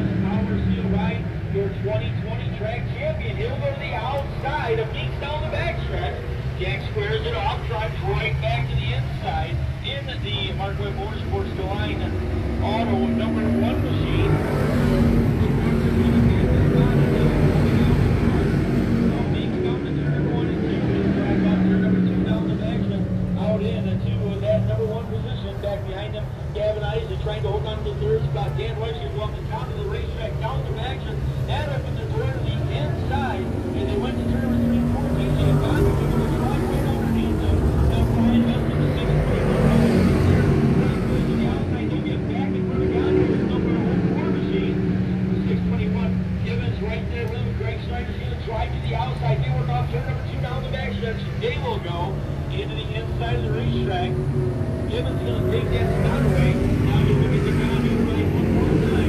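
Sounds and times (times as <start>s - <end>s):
indistinct voices: 0.0s - 59.0s
race car engines droning: 0.0s - 59.0s.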